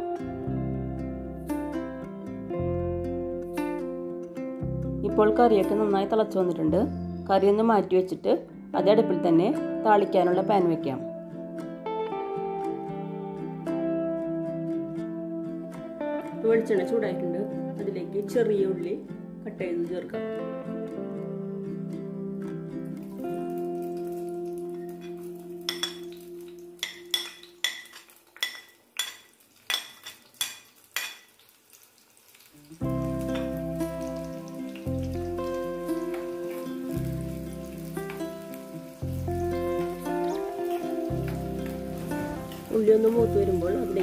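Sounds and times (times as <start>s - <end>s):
onion frying in hot oil: 23.0s - 44.0s.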